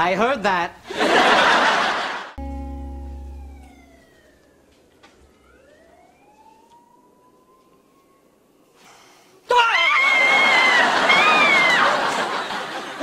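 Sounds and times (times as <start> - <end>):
held music chord: 2.4 - 4.4
distant siren wailing: 3.0 - 8.8.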